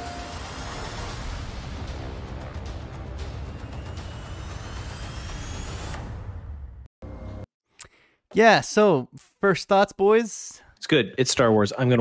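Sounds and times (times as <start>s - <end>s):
thin rising whines: 3.1s - 6.6s.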